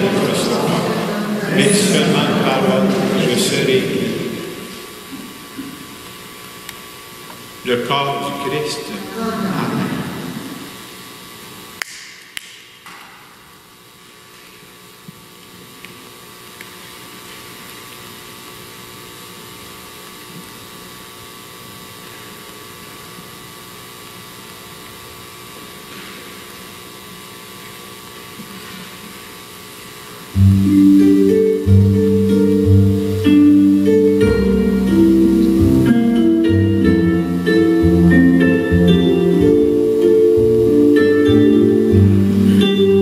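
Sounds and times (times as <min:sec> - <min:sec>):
low hum of a hall: 0:00.0 - 0:43.0
acoustic guitar strummed chords: 0:30.3 - 0:43.0.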